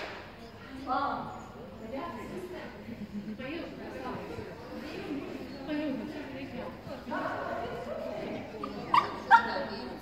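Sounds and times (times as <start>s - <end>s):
low background voices: 0.0s - 10.0s.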